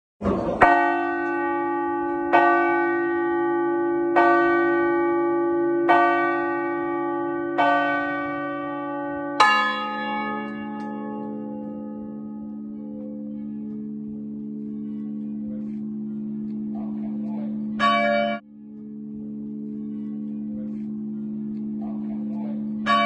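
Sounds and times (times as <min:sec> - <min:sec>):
large church bells ringing: 0:00.2 - 0:23.0.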